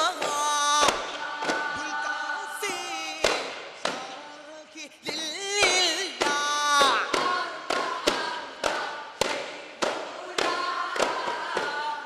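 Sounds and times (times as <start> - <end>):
group singing: 0.0 - 12.0
frame drums struck together: 3.2 - 4.1, 5.1 - 12.0.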